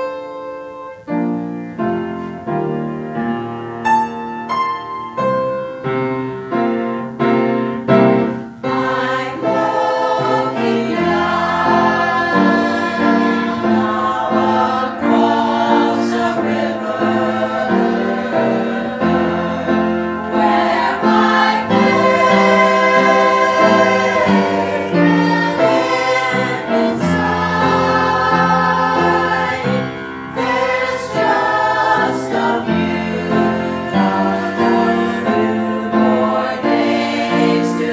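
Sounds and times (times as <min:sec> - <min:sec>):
piano accompaniment: 0:00.0 - 0:37.9
choir singing a hymn: 0:07.4 - 0:37.9.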